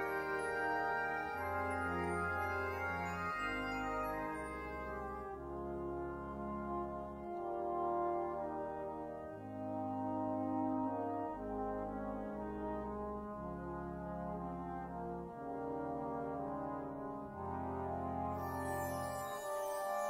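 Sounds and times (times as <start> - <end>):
brass chords: 0.0 - 20.0
horn melody: 0.0 - 20.0.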